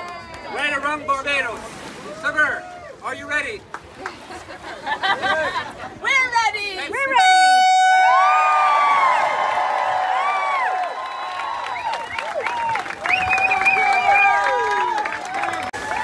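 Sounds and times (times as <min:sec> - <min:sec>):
air horn blast: 0:07.2 - 0:08.4
crowd cheering and shouting: 0:08.0 - 0:16.0.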